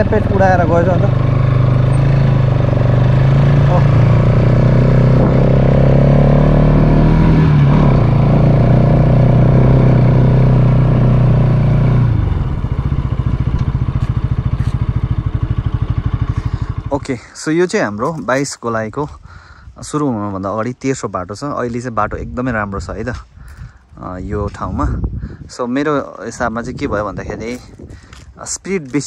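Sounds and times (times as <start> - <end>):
motorcycle engine running: 0.0 - 18.6.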